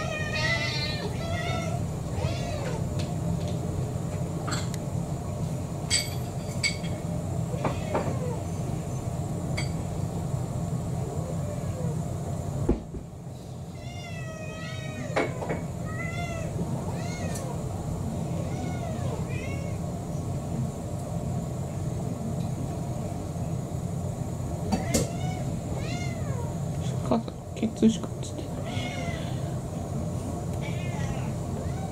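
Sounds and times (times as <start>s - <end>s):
cats meowing: 0.0s - 3.2s, 7.5s - 8.8s, 11.0s - 12.1s, 13.7s - 20.0s, 24.7s - 26.7s, 28.4s - 29.7s, 30.6s - 31.9s
steady low hum: 0.0s - 31.9s.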